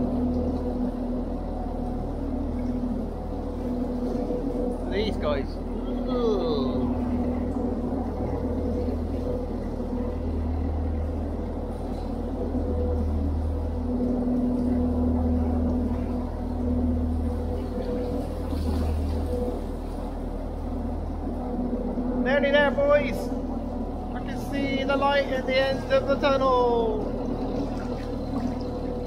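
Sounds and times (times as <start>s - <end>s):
diesel engine rumble in tunnel: 0.0s - 29.0s
man speaking: 22.2s - 23.4s, 24.2s - 27.1s.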